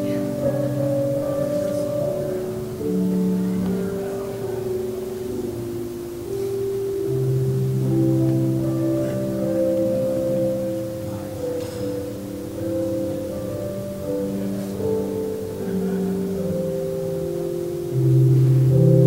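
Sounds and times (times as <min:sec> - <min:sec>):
slow instrumental music: 0:00.0 - 0:19.0.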